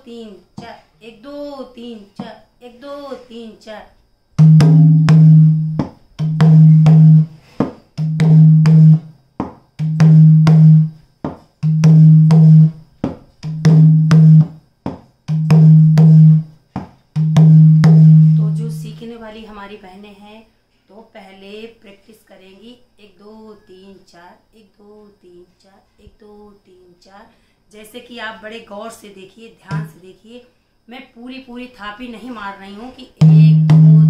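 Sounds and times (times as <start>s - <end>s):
hand drum rhythm: 4.4s - 19.0s, 33.2s - 34.0s.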